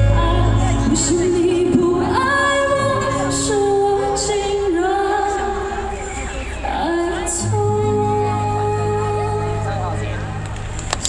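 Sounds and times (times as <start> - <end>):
woman singing into microphone: 0.0 - 10.2
deep bass backing: 0.0 - 11.0.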